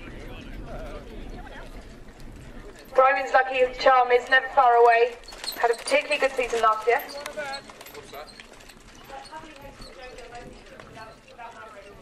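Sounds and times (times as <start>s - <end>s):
horse hoofbeats trotting: 0.0s - 12.0s
people talking: 2.9s - 8.3s, 9.1s - 12.0s.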